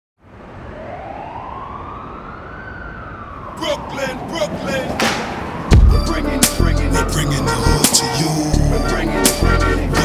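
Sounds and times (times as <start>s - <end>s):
siren wailing: 0.4s - 10.0s.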